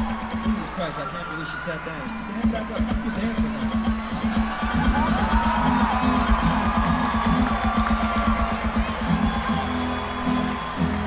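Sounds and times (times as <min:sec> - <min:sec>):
crowd whooping and cheering: 0:00.0 - 0:11.0
live acoustic rock band: 0:03.6 - 0:11.0.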